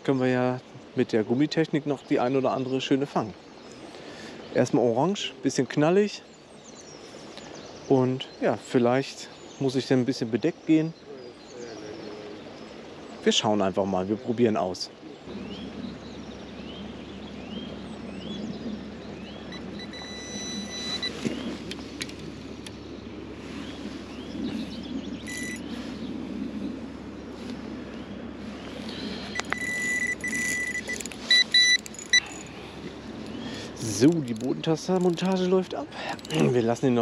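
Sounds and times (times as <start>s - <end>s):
electronic alarm beeping: 19.5s - 21.2s, 25.2s - 25.7s, 29.3s - 32.5s.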